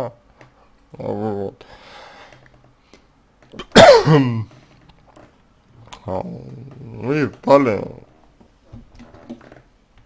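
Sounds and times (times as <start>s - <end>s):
man sneezing or coughing: 3.6s - 4.5s.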